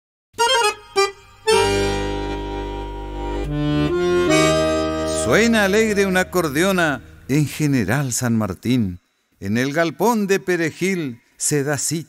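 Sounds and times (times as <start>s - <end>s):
accordion playing held chords: 0.4s - 7.6s.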